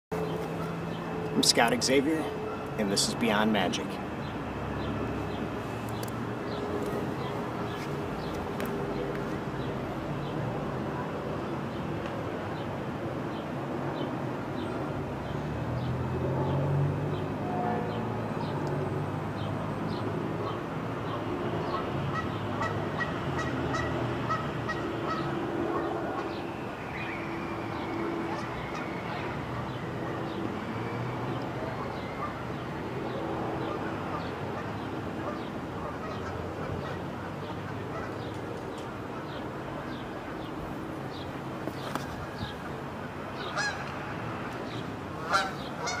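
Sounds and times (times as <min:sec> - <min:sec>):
birds calling: 0:43.4 - 0:44.0, 0:44.7 - 0:46.0.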